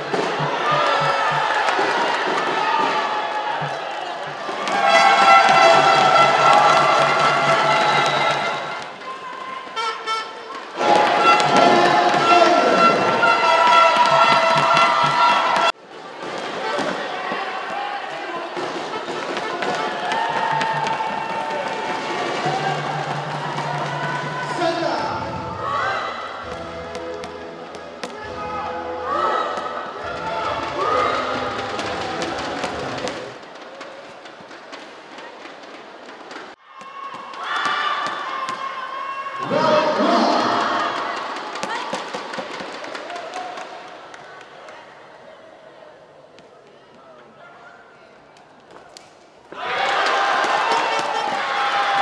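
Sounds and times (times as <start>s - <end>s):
crowd noise: 0.0s - 52.0s
music: 3.6s - 8.8s, 18.7s - 33.4s.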